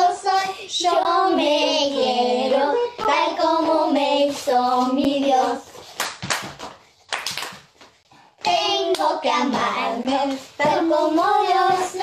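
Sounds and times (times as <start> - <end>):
woman and children singing: 0.0 - 5.8, 8.4 - 12.0
sharp hand claps: 6.0 - 7.9.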